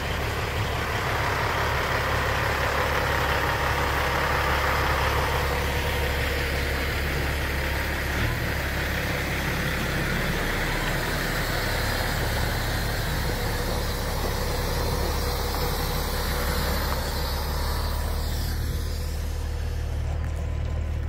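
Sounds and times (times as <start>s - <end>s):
diesel truck engine idling: 0.0s - 21.0s.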